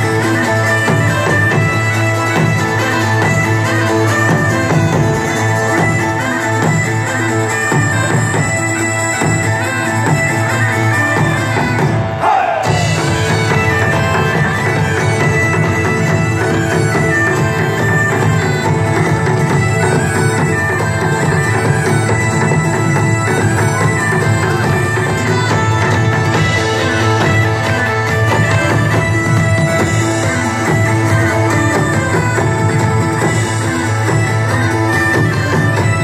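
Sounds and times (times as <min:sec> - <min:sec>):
bagpipes playing: 0:00.0 - 0:36.0.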